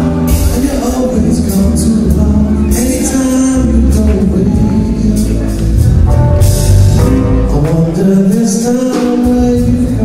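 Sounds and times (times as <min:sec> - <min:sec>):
jazz-funk band playing: 0:00.0 - 0:10.0.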